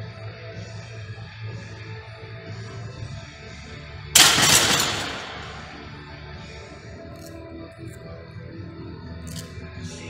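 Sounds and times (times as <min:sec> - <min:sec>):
barbell clanging into steel hooks: 0:04.2 - 0:06.0
weight plates rattling: 0:04.2 - 0:06.0.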